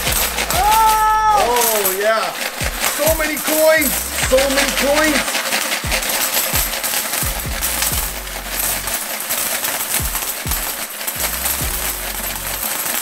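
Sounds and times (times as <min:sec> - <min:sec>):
background music with deep bass: 0:00.0 - 0:01.8, 0:02.5 - 0:09.2, 0:09.9 - 0:12.8
coins jingling onto a wooden table: 0:00.0 - 0:13.0.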